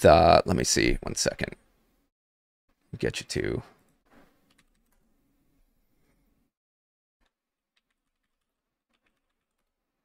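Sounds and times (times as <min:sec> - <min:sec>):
computer keyboard typing: 0:04.5 - 0:05.0, 0:07.2 - 0:10.0.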